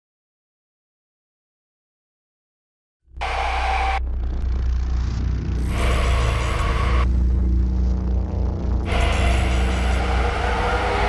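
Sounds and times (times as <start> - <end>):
deep low rumbling drone: 3.2 - 11.0
noise bursts: 3.2 - 11.0.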